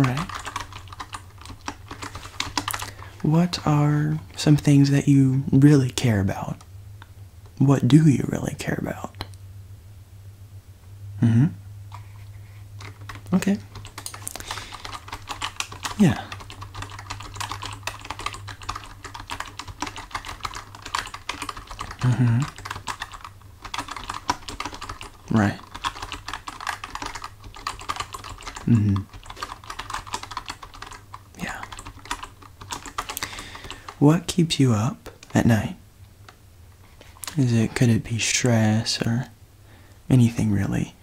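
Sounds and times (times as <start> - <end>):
typing on keyboard: 0.0 - 3.1, 12.8 - 34.3.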